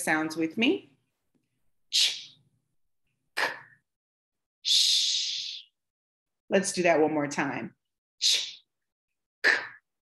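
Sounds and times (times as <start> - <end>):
woman saying speech sounds: 0.0 - 0.9, 6.5 - 7.7.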